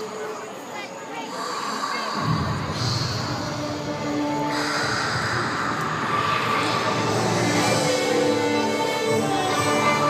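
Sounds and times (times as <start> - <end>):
low rumble: 2.1 - 8.2
music over outdoor loudspeakers: 2.2 - 10.0.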